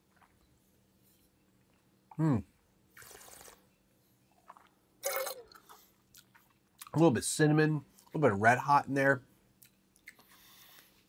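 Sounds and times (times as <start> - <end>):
spitting wine into metal cup: 4.4 - 5.8.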